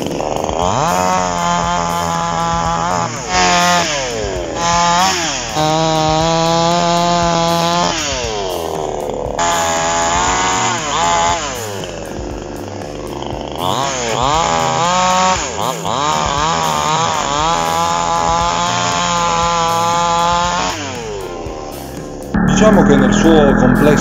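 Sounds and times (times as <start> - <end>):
chainsaw cutting tree: 0.0 - 22.3.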